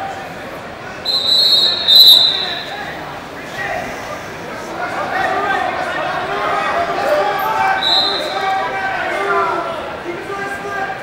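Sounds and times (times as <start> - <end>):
referee's whistle blast: 1.1 - 2.8, 7.8 - 8.5.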